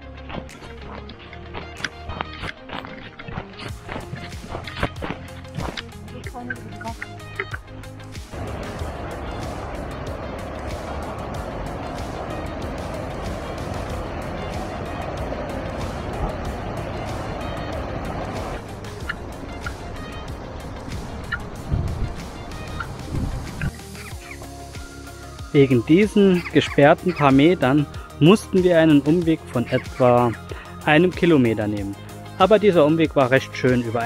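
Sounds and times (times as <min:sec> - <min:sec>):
background music: 0:00.0 - 0:34.0
sharp cracks and snaps: 0:00.2 - 0:06.0
river water rushing over weir: 0:05.5 - 0:28.6.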